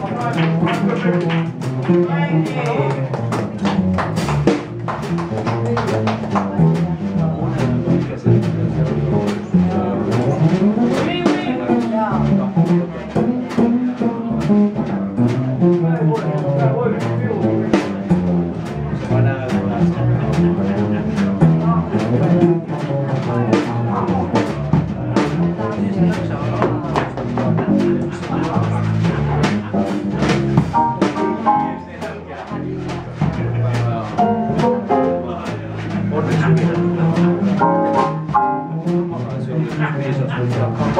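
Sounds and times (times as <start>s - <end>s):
double bass line: 0.0s - 40.9s.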